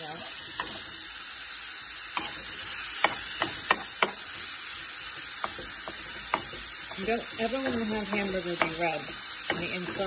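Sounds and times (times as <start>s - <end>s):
meat sizzling in a frying pan: 0.0s - 10.0s
metal spoon clicking against pan: 5.4s - 10.0s.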